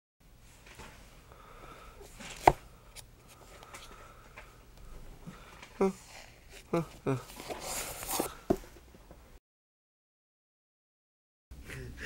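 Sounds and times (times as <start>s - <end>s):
fingertips tapping book spines: 2.1s - 4.5s.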